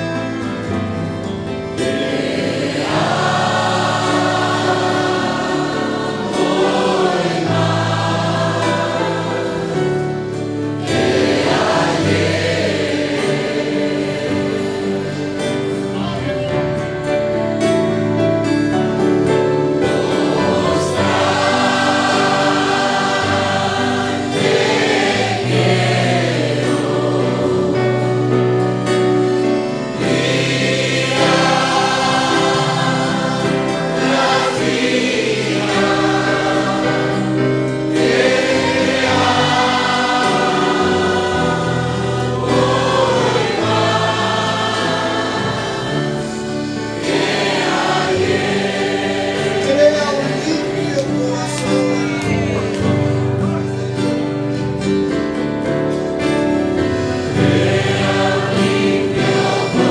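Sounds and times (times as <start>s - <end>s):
congregation singing a hymn: 0.0s - 59.9s
instrumental accompaniment: 0.0s - 59.9s.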